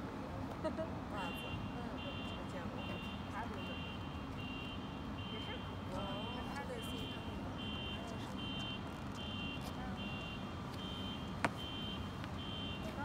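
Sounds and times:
street noise: 0.0s - 13.0s.

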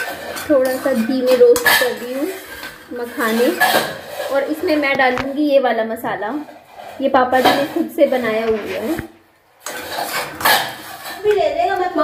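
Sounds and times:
spoon scraping metal pan: 0.0s - 12.0s.

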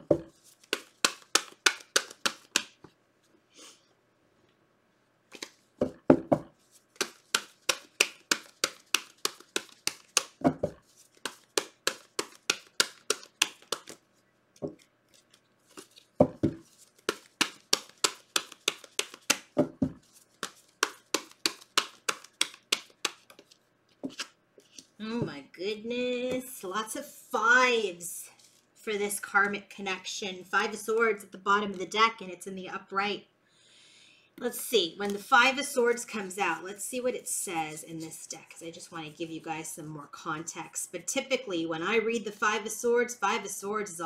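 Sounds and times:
cards being shuffled by hand: 0.1s - 3.0s, 5.3s - 25.0s.

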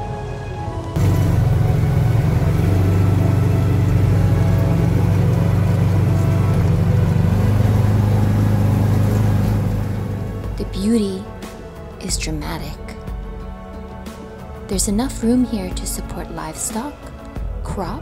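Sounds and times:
background music: 0.0s - 18.0s
utility vehicle engine running: 1.0s - 11.1s.

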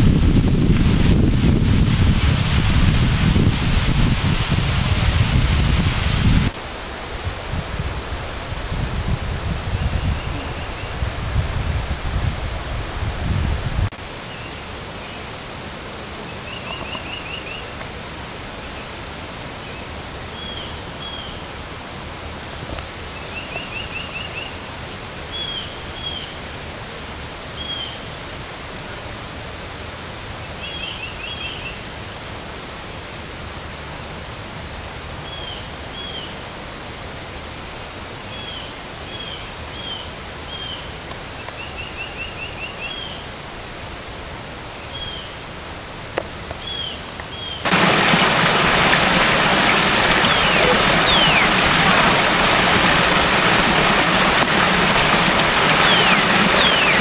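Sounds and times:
wind buffeting microphone: 0.0s - 14.0s
steady outdoor hiss: 0.0s - 57.0s
bird trilling and chirping: 49.7s - 51.6s, 55.8s - 57.0s.

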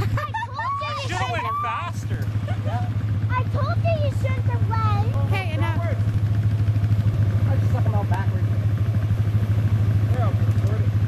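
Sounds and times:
atv engine idling: 0.0s - 11.0s.

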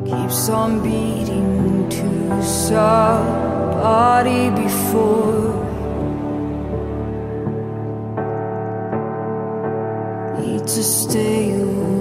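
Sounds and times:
slow piano chords: 0.0s - 12.0s.

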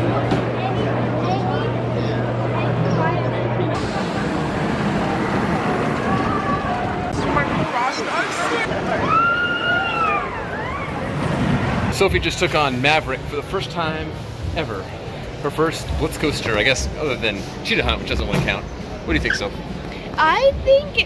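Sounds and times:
crowd chatter: 0.0s - 21.0s
roller coaster train on track: 3.8s - 14.0s.

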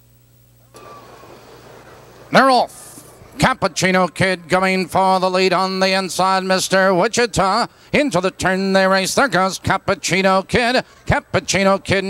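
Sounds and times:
low electrical hum: 0.0s - 12.0s
racetrack background noise: 0.7s - 12.0s.

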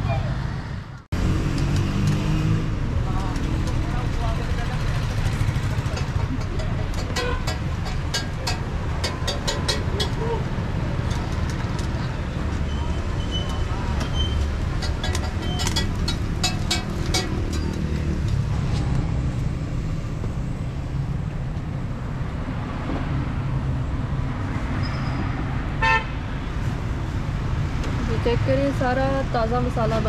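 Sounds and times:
street traffic rumble: 0.0s - 30.0s
metal tongs tapping on griddle: 5.9s - 10.3s, 14.8s - 18.4s
car horn toot: 25.8s - 26.2s.

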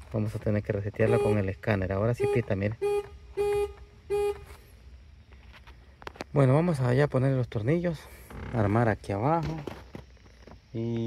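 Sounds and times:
car horn toots: 1.0s - 4.6s.

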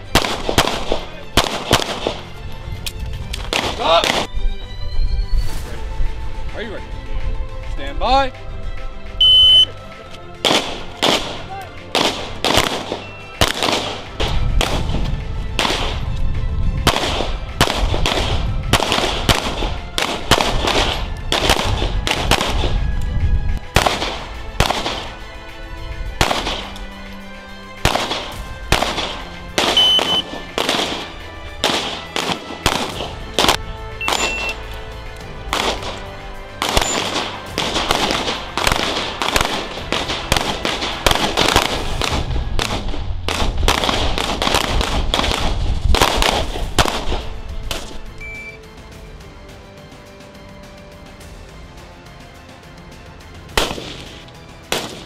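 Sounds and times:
handgun shots: 0.2s - 2.2s, 10.4s - 11.4s, 27.9s - 34.5s, 36.6s - 48.0s.

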